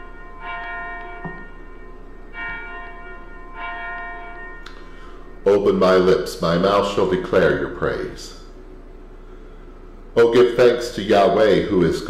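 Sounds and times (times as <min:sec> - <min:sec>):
bell ringing: 0:00.0 - 0:06.3.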